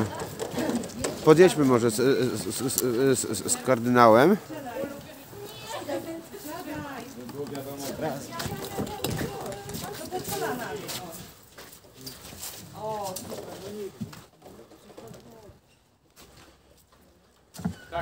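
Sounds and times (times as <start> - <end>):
distant people talking: 0.0 - 15.6.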